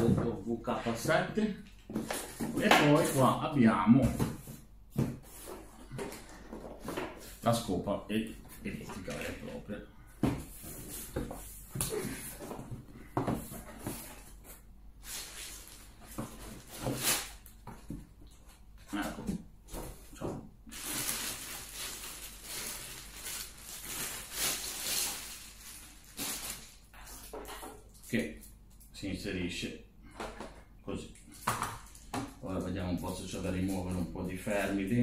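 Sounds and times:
plastic wrapping rustling: 0:13.4 - 0:17.9, 0:19.9 - 0:28.2, 0:31.3 - 0:34.7.

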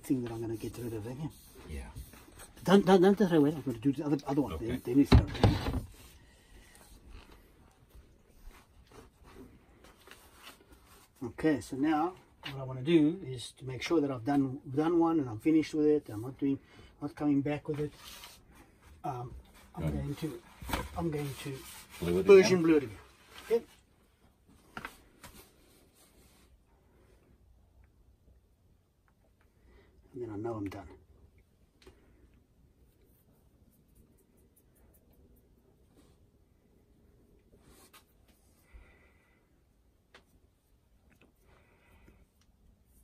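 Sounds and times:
cloth rag wiping metal: 0:00.0 - 0:05.1, 0:21.0 - 0:23.7
soft handling sounds: 0:00.0 - 0:12.8, 0:17.4 - 0:28.0.

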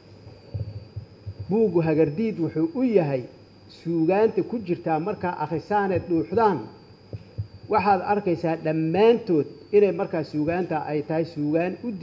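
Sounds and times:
faint low thumps: 0:00.5 - 0:01.6, 0:05.9 - 0:06.4, 0:07.1 - 0:07.9
man speaking: 0:01.5 - 0:06.8, 0:07.7 - 0:12.0.

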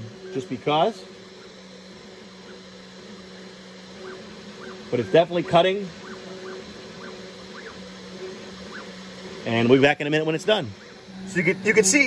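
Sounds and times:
router spindle humming: 0:00.0 - 0:12.0
stepper motors whining: 0:00.0 - 0:12.0.

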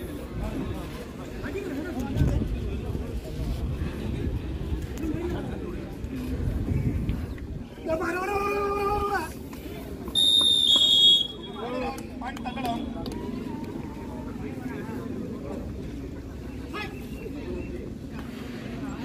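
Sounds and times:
crowd voices and shouting: 0:00.0 - 0:19.0
referee's whistle blast: 0:10.2 - 0:11.7.

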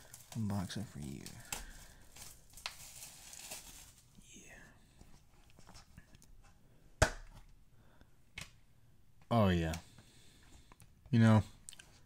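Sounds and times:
plastic shrink wrap crinkling and tearing: 0:00.0 - 0:04.2.

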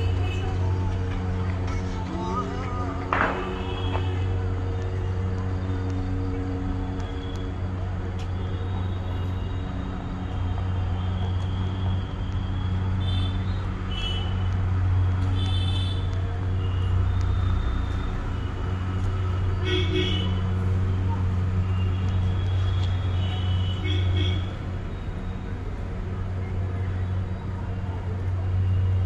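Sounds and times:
low engine drone: 0:00.0 - 0:13.7.

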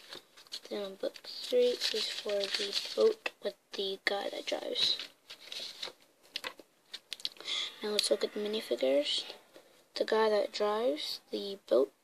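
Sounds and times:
boy speaking: 0:00.6 - 0:05.1, 0:07.5 - 0:12.0.

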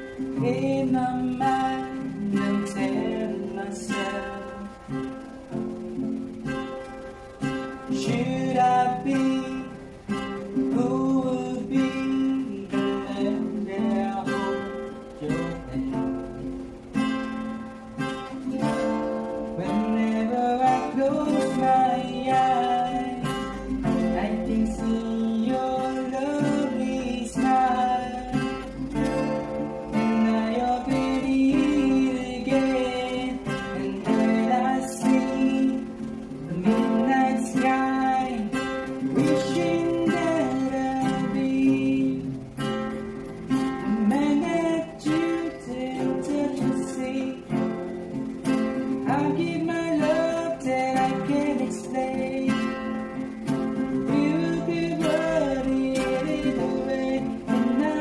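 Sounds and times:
acoustic guitar strumming: 0:00.0 - 0:58.0
person singing: 0:19.6 - 0:42.5, 0:43.8 - 0:58.0.

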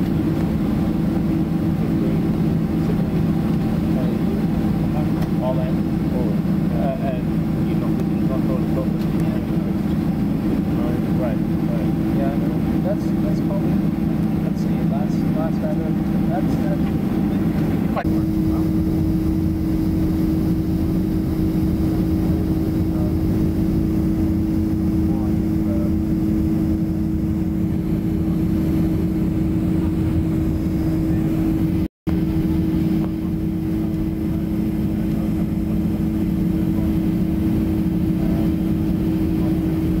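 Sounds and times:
jet airliner cabin rumble: 0:00.0 - 0:40.0.

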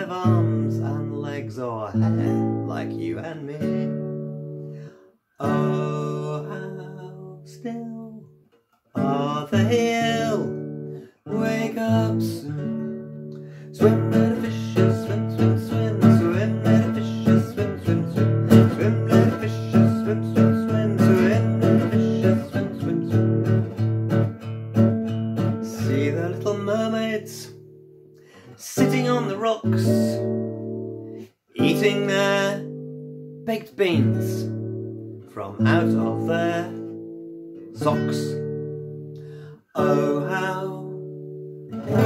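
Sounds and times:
acoustic guitar chord strummed: 0:00.0 - 0:42.0.

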